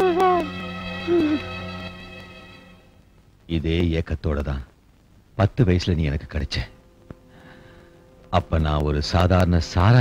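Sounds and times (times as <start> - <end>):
held chord of film music: 0.0 - 2.9.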